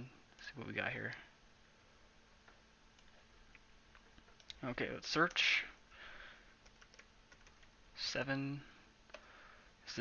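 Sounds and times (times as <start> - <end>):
keyboard keystrokes: 6.6 - 7.7.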